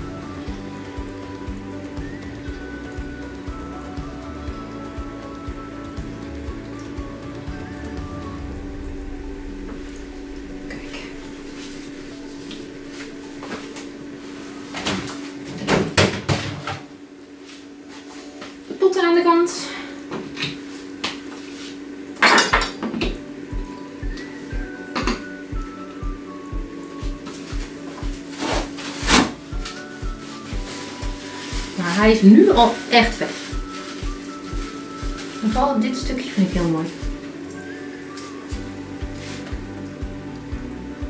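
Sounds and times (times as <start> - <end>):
background music with a beat: 0.0 - 14.1, 23.1 - 32.7, 33.4 - 41.0
brief wavering pitched sound: 7.2 - 14.4.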